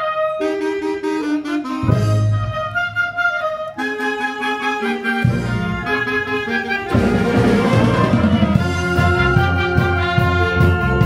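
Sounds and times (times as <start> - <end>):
tuba bass notes: 0.0 - 11.0
wind band playing: 0.0 - 11.0.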